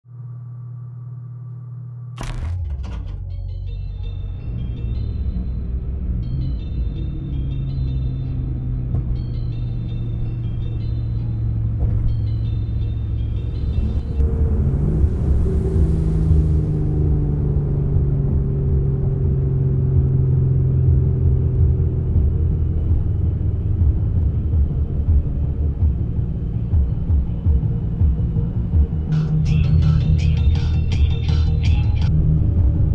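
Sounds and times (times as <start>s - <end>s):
low rumbling drone: 0.1s - 32.9s
rushing swell: 13.2s - 18.4s.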